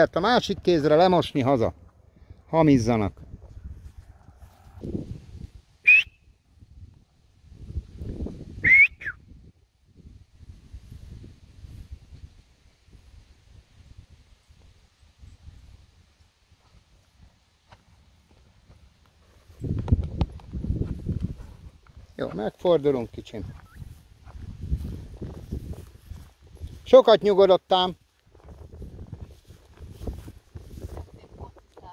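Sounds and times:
rising whistles: 0:05.8 - 0:06.4, 0:08.6 - 0:09.2.

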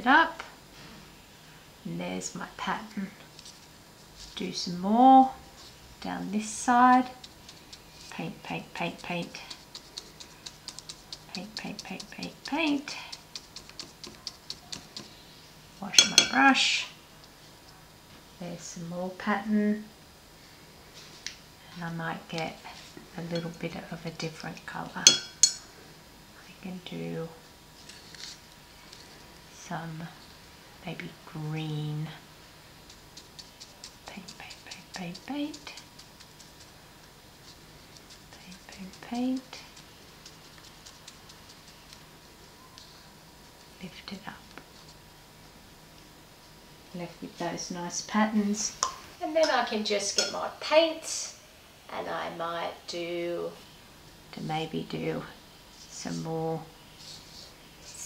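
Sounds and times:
paintbrush ticking on paper: 0:06.9 - 0:15.3, 0:32.8 - 0:42.8.

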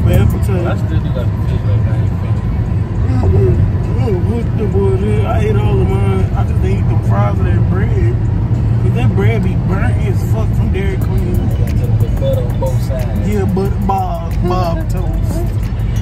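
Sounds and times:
car road rumble: 0:00.0 - 0:16.0
music playing: 0:03.0 - 0:16.0
rhythmic ticks: 0:09.3 - 0:16.0.

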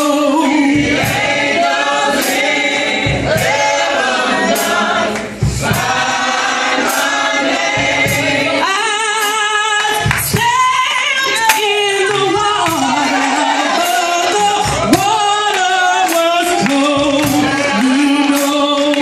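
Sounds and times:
steady beat of sharp hits: 0:00.0 - 0:10.8, 0:11.4 - 0:18.6
group singing gospel song: 0:00.0 - 0:19.0.

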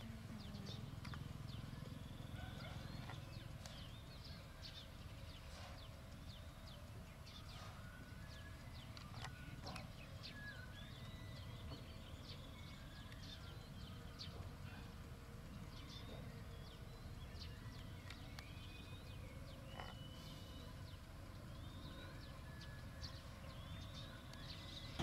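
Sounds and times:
low steady rumble: 0:00.0 - 0:25.0
small birds chirping: 0:00.0 - 0:25.0.

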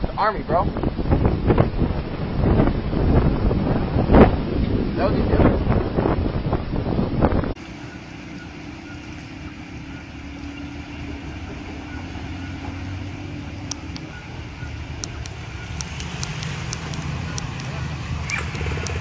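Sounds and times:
wind buffeting microphone: 0:00.0 - 0:19.0
diesel truck engine running: 0:06.7 - 0:19.0
water washing: 0:07.6 - 0:19.0
sharp clicks: 0:15.0 - 0:19.0.

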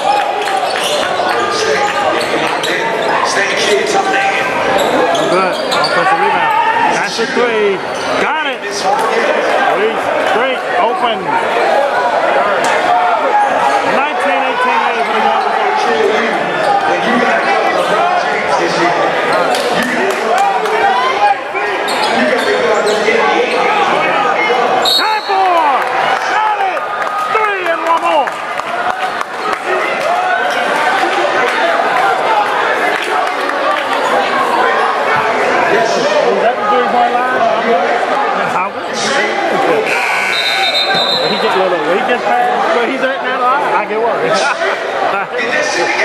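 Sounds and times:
chatter and shouts: 0:00.0 - 0:46.0.

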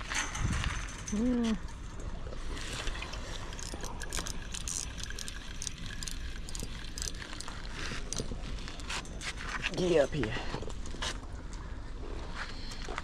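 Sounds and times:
fishing reel clicking: 0:03.5 - 0:09.2.

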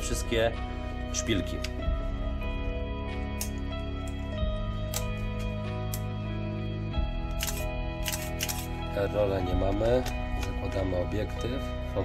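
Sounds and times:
background music: 0:00.0 - 0:12.0
camera clicks: 0:07.3 - 0:08.7.

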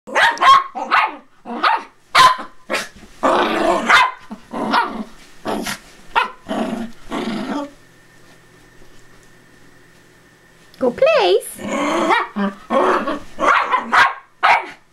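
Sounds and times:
small dogs barking and growling: 0:00.1 - 0:07.8, 0:11.5 - 0:14.9.

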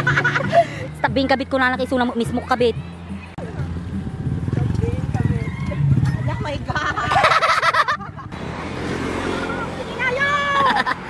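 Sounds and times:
small motorcycle engines puttering: 0:03.6 - 0:10.9.

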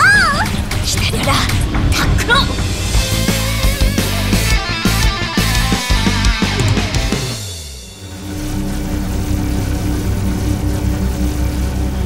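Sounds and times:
low mechanical drone pulsing: 0:00.0 - 0:12.0.

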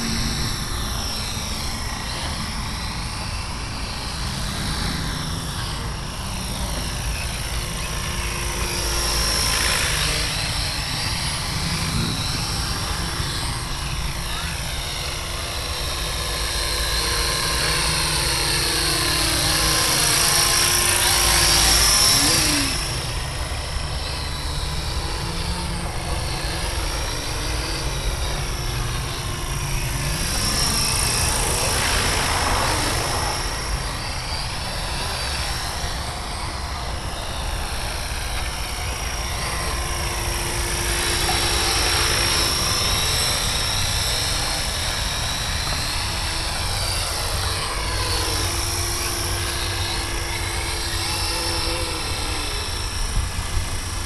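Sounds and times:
rc helicopter motor whine: 0:00.0 - 0:54.0.

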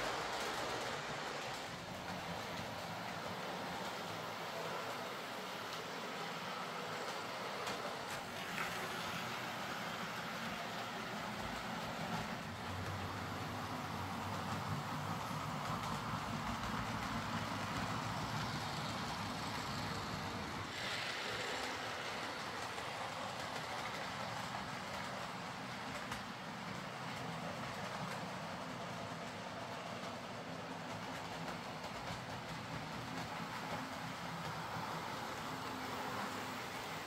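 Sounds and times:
model train motors whirring: 0:00.0 - 0:37.0.

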